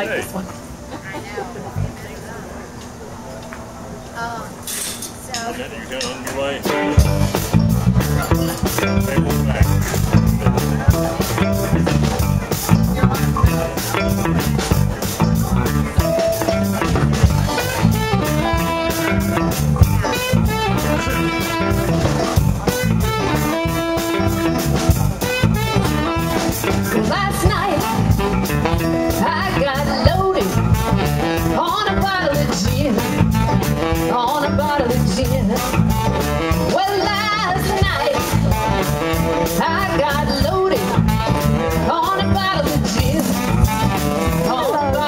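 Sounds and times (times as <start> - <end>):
live band playing: 6.5 - 45.0
woman singing: 27.0 - 28.0, 29.1 - 30.6, 31.5 - 33.1, 34.1 - 35.7, 36.7 - 38.4, 39.5 - 41.0, 41.8 - 43.4, 44.3 - 45.0.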